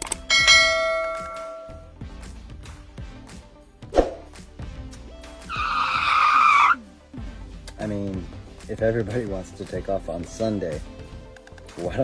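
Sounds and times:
background music with beat: 0:00.0 - 0:12.0
loud screech: 0:05.5 - 0:06.8.

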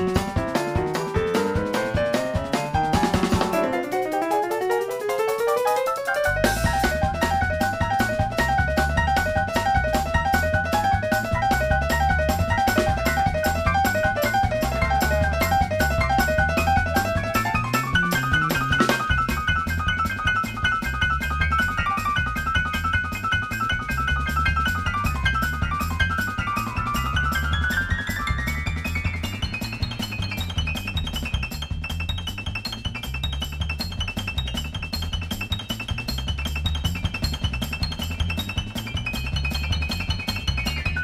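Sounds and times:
fast high piano figure: 0:00.0 - 0:41.0
funk band playing: 0:00.0 - 0:41.0.

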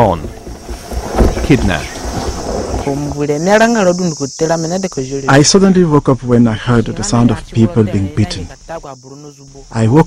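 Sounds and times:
insects chirring: 0:00.0 - 0:10.0
young man speaking: 0:03.2 - 0:10.0.

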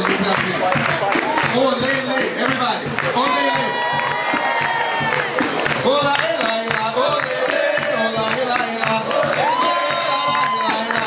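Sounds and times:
atabaque drum: 0:00.0 - 0:11.0
crowd cheering: 0:00.0 - 0:11.0
hand clapping: 0:00.0 - 0:11.0
people singing: 0:03.4 - 0:11.0.

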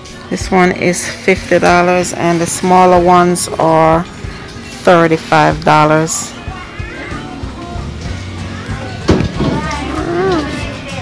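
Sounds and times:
background music: 0:00.0 - 0:11.0
faint distant voices: 0:06.2 - 0:11.0.

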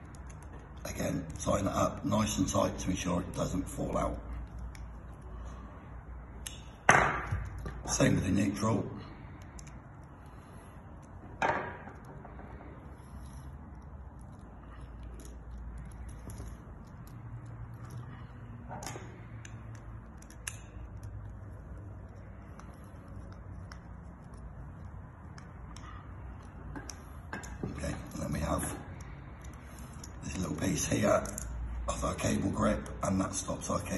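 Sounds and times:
low room hum: 0:00.0 - 0:33.9.

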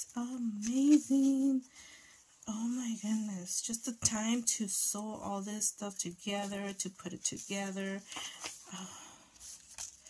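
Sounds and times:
paper pages rustling: 0:00.4 - 0:01.6, 0:05.9 - 0:10.0.

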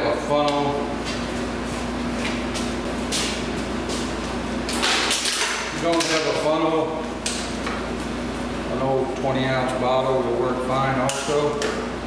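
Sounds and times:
low shop hum: 0:00.0 - 0:12.0.

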